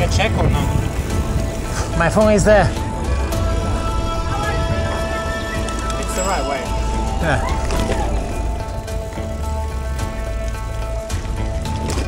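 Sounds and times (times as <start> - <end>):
background music with held notes: 0.0 - 12.0
low rumble: 0.0 - 12.0.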